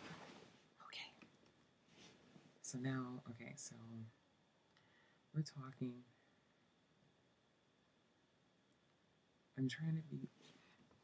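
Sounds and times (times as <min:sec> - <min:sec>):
faint whisper: 0:00.0 - 0:01.4.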